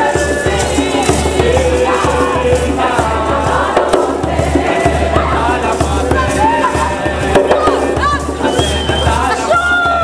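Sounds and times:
group of voices singing: 0.0s - 10.0s
steady low beat: 0.0s - 10.0s.

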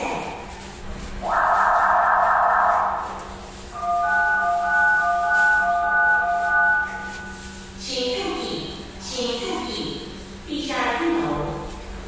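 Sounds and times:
fire alarm: 1.2s - 7.8s
electronic chime tones: 3.7s - 7.6s.

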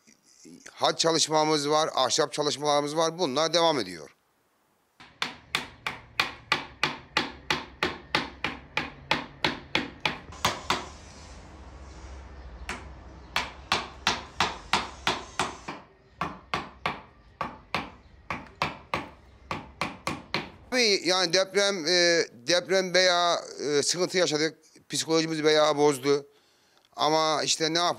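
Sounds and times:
mallet striking chisel into wood: 5.0s - 10.9s, 12.7s - 20.6s.

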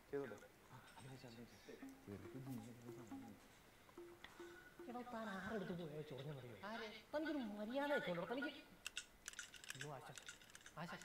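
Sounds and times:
man speaking: 0.2s - 3.4s
typing on laptop keyboard: 8.8s - 11.0s.

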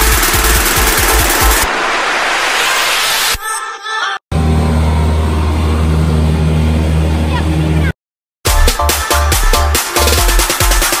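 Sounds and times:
water rushing: 0.0s - 3.4s
jet ski engine droning: 4.4s - 7.9s.

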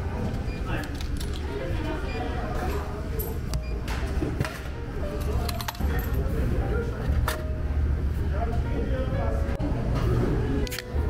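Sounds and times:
vending machine hum: 0.0s - 11.0s.

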